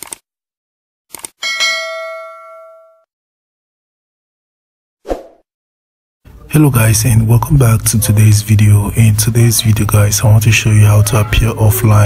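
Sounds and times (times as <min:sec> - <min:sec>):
bell-like ding: 0:01.4 - 0:03.1.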